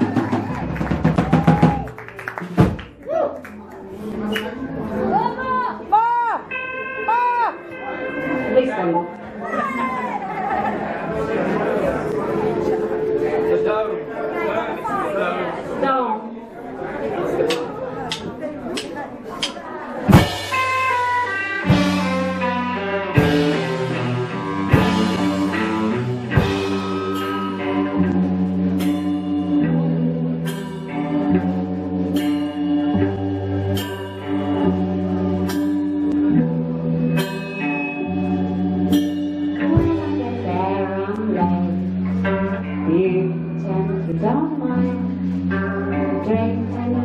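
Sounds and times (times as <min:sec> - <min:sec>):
electric guitar: 0:00.0 - 0:15.7, 0:19.9 - 0:47.0
people chattering in a room: 0:02.2 - 0:47.0
keyboard: 0:06.5 - 0:15.8, 0:16.8 - 0:47.0
electric bass: 0:20.0 - 0:47.0
drum kit hits: 0:20.1 - 0:28.0.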